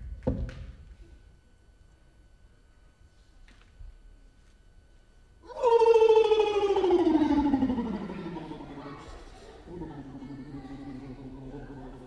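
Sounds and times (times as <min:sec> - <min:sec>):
man singing sliding long note: 0:05.5 - 0:12.0.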